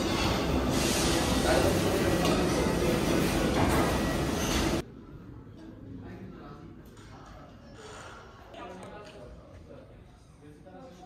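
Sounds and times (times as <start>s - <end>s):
commercial kitchen roar: 0.0s - 5.5s.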